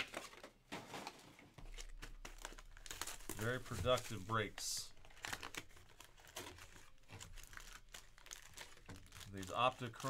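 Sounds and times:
foil packaging rustling and crinkling: 0.0s - 10.0s.

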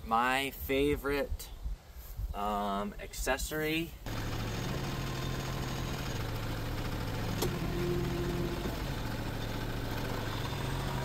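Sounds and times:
diesel engine idling: 4.1s - 11.0s.

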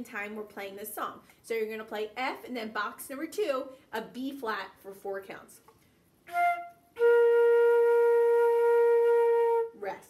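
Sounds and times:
flute holding a long note: 6.3s - 9.8s.

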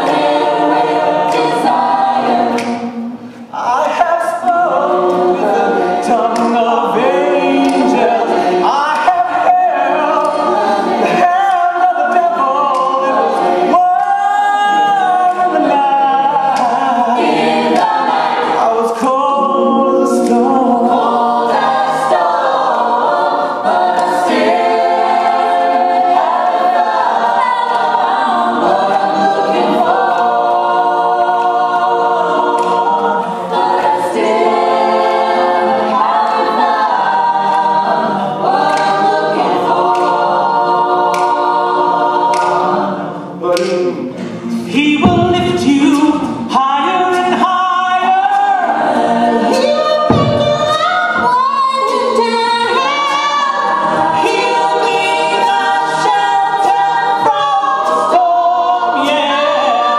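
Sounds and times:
a cappella choir singing: 0.0s - 59.9s.

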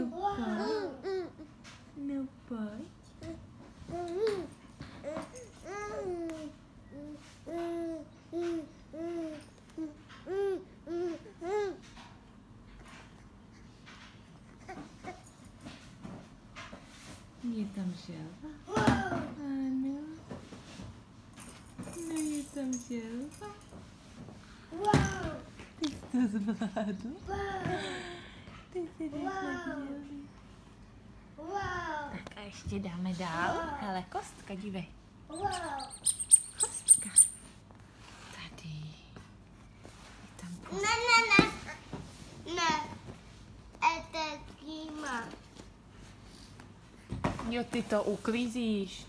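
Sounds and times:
squeaky toy squeaks: 35.3s - 37.5s.

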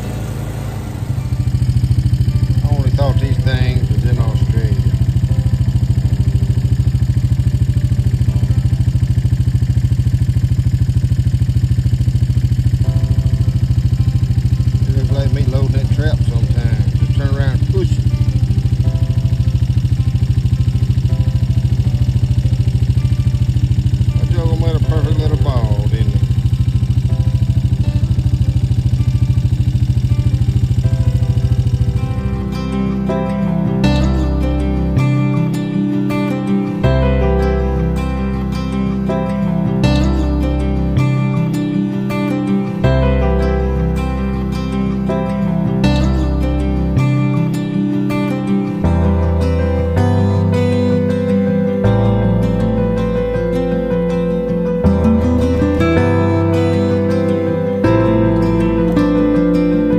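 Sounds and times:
guitar music: 0.0s - 59.9s
vehicle engine idling: 0.0s - 59.9s.

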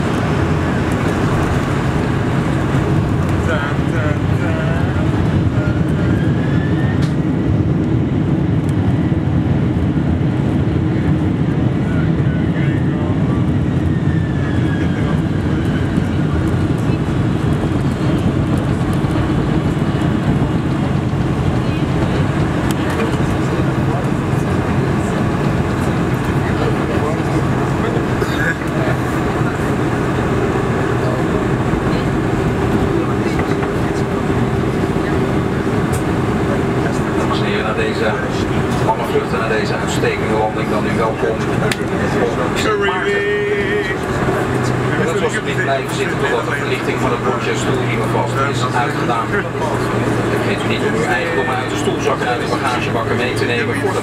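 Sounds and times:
airliner cabin rumble taxiing: 0.0s - 54.0s
faint voices: 0.0s - 54.0s.

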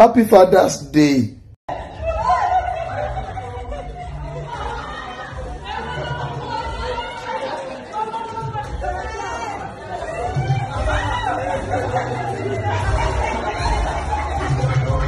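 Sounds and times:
people chattering in a hall: 1.0s - 15.0s.

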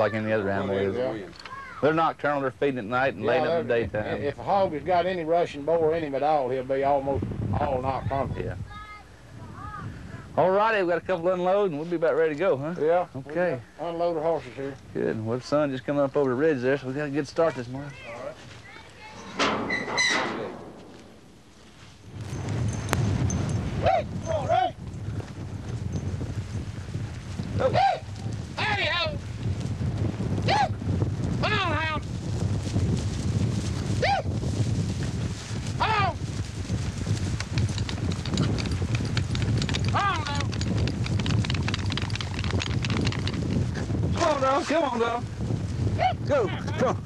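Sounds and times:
wind rumble on microphone: 2.9s - 47.0s
hoofbeats on dry ground: 20.6s - 46.0s.

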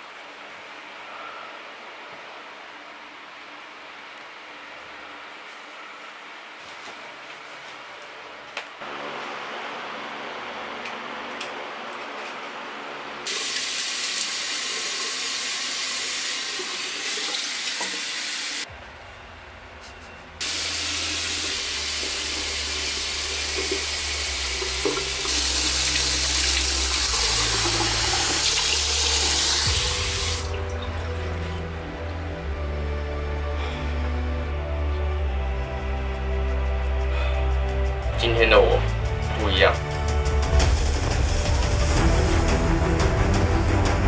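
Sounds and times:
tap water running into sink: 13.3s - 18.6s, 20.4s - 31.5s
bass-heavy music: 20.4s - 44.0s.

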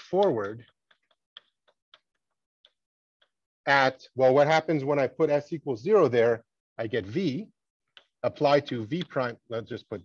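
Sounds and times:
chalk tapping on blackboard: 0.2s - 3.4s.

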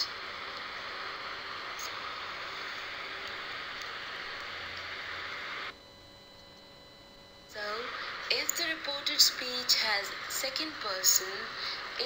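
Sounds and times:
steady background hiss: 0.0s - 5.8s, 7.1s - 12.0s.

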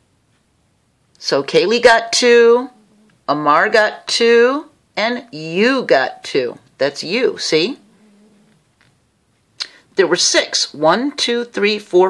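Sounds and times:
person speaking: 1.2s - 8.2s, 9.6s - 12.0s.

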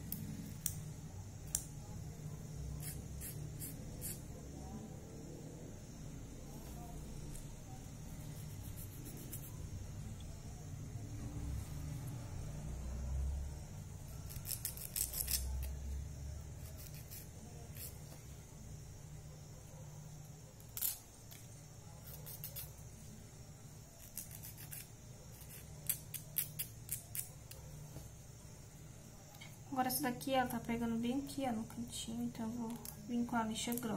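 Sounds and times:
steady low hum: 0.0s - 26.0s
nail file rasping on fingernail: 2.8s - 4.2s, 8.2s - 9.6s, 14.2s - 15.7s, 16.6s - 18.0s, 22.0s - 22.8s, 24.0s - 27.4s.

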